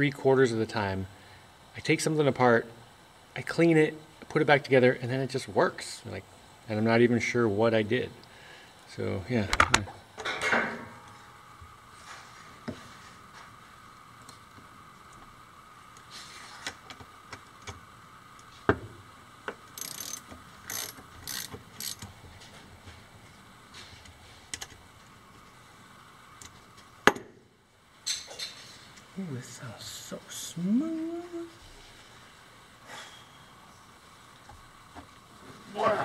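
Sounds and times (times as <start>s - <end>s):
electric motor whirring: 19.8s - 22.0s
motor clicks and scrapes: 19.8s - 22.1s.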